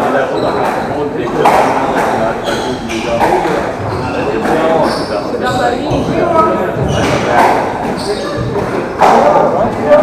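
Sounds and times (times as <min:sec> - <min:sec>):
voices: 0:00.0 - 0:10.0
squash ball hitting rackets and walls: 0:00.4 - 0:05.0, 0:05.6 - 0:09.9.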